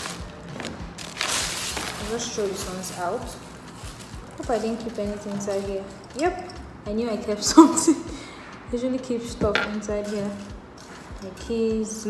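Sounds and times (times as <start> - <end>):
plastic bag rustling: 0.0 - 6.5, 9.8 - 11.2
background music: 0.0 - 12.0.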